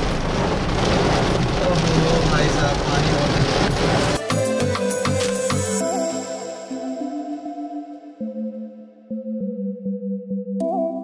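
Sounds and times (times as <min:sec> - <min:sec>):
car road noise: 0:00.0 - 0:04.2
heavy rain on car roof: 0:00.0 - 0:05.8.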